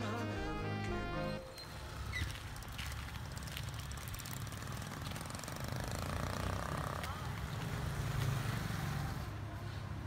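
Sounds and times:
motor scooter engine: 0:01.6 - 0:09.3.

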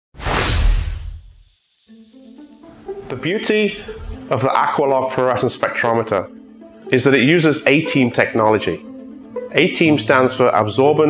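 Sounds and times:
music notes: 0:01.9 - 0:11.0.

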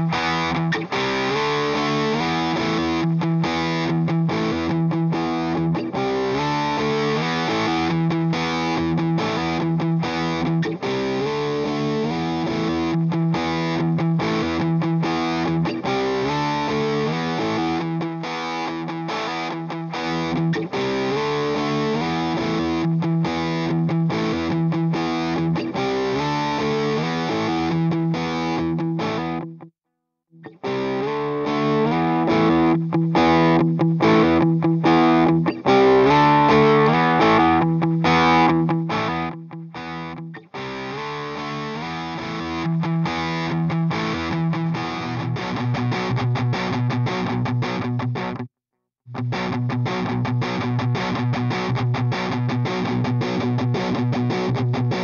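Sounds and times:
distorted electric guitar riff: 0:00.0 - 0:29.7, 0:30.4 - 0:55.0.

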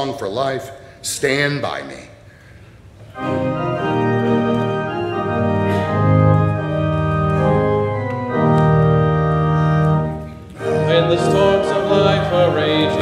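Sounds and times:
church organ playing hymn chords: 0:03.0 - 0:13.0.

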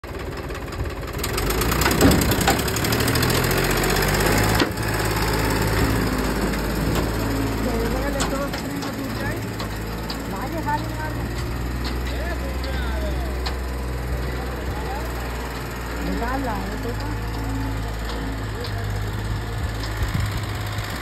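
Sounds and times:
tractor diesel engine under load: 0:00.0 - 0:21.0.

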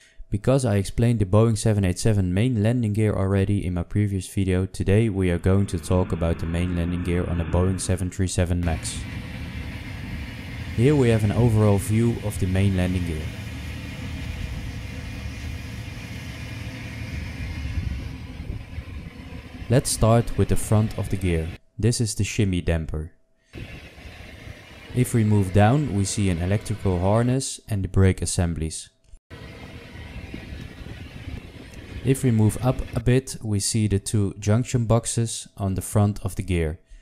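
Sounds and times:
low rumble: 0:04.8 - 0:21.6, 0:29.3 - 0:33.0.

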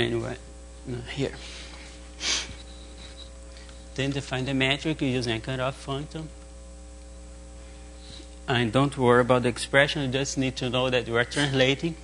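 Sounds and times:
electrical hum: 0:00.0 - 0:12.0
person sniffing: 0:01.4 - 0:03.3.

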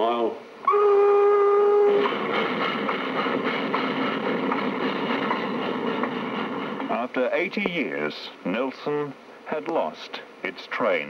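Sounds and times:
train running noise: 0:00.0 - 0:11.0
steam locomotive whistle: 0:00.6 - 0:03.2.

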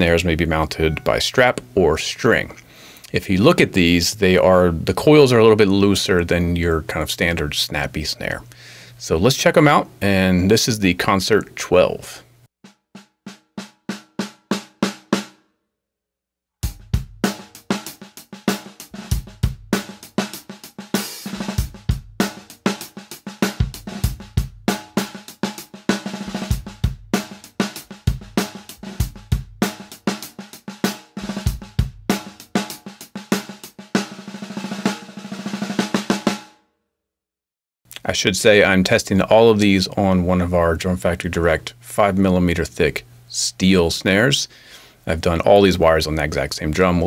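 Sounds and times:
snare drum played with sticks: 0:16.6 - 0:36.5.

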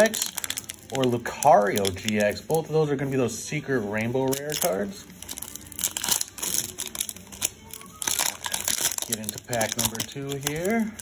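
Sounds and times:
foil wrappers crinkling: 0:00.0 - 0:02.9, 0:03.9 - 0:11.0.

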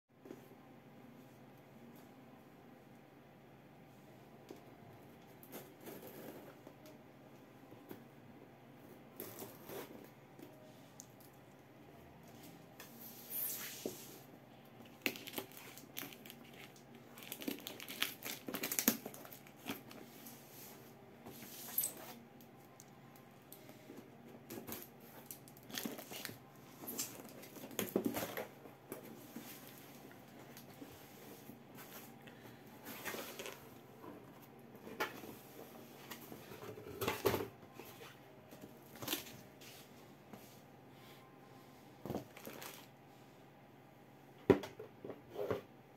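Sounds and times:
packing tape crinkling and crackling: 0:14.8 - 0:20.1, 0:24.4 - 0:30.8.

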